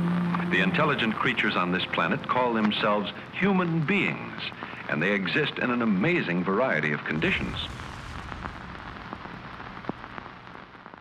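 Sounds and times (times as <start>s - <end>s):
crackling hiss: 0.0s - 11.0s
low rumble: 7.2s - 10.7s.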